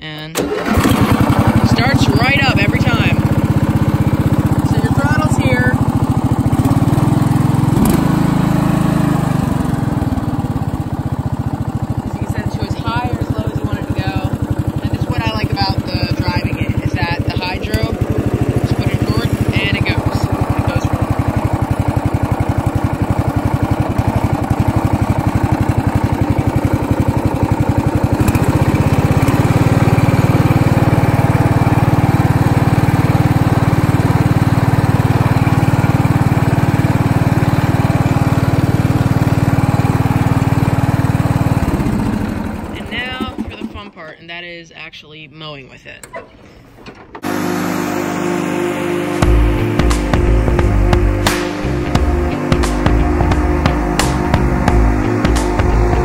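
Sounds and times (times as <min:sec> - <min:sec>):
riding mower engine running: 0:00.0 - 0:44.3, 0:46.0 - 0:56.0.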